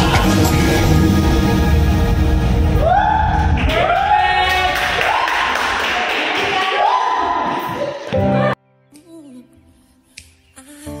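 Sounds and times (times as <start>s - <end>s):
dance music: 0.0s - 5.2s.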